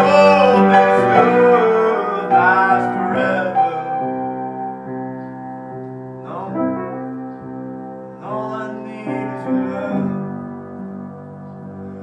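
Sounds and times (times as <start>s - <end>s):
piano chord ringing: 0.0s - 12.0s.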